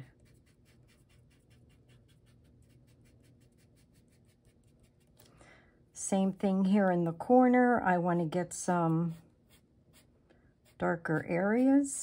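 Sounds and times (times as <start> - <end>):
fingertip rubbing on cardstock: 0.0 - 5.2.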